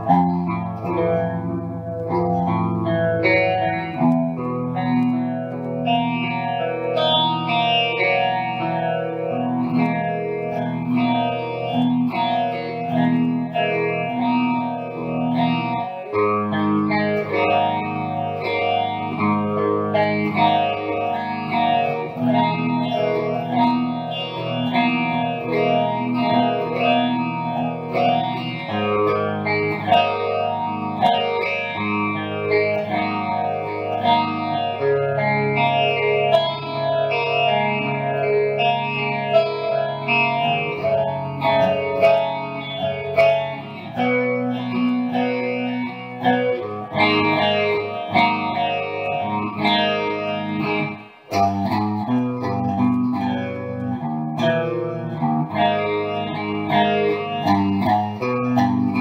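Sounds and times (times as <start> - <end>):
electric guitar through amplifier: 0.0 - 59.0.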